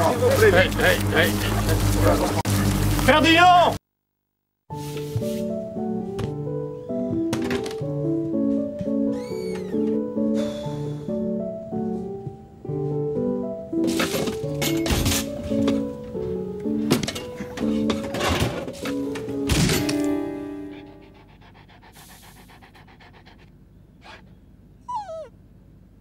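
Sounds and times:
light stepped music: 0.0 - 3.2, 4.7 - 7.3, 11.2 - 13.6
pots and pans clattering: 13.8 - 15.8, 16.9 - 20.0
dog yelping: 24.0 - 25.4.

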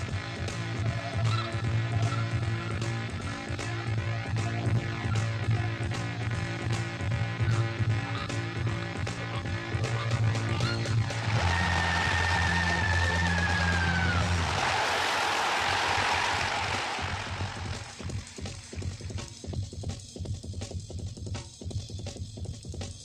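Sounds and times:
background music with held notes: 0.0 - 14.8.

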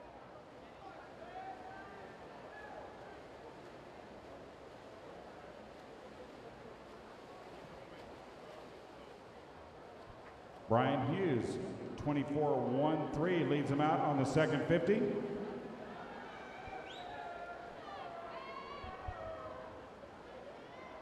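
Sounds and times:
distant crowd: 0.0 - 21.0
swimmers splashing: 2.0 - 18.8.

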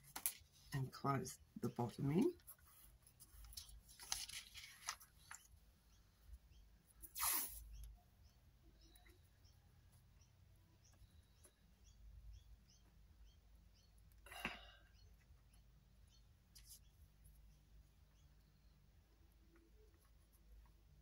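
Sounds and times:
paper rustling: 2.6 - 5.5.

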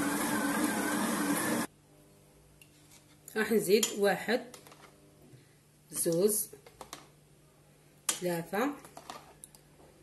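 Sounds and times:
stand mixer whining: 0.0 - 1.7.

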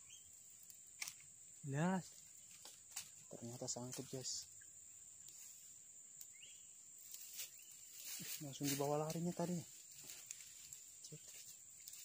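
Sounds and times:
faint chirp: 0.0 - 0.8, 3.2 - 8.6.

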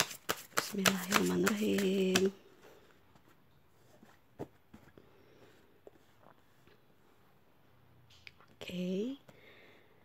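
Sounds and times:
cards tapping and rustling: 0.0 - 2.4.

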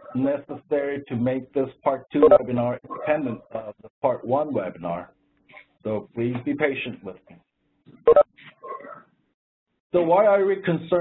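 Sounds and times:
man speaking over phone line: 2.1 - 4.2.

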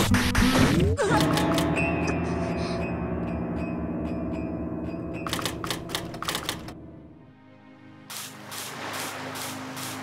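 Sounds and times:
typewriter clicks: 5.3 - 6.8.

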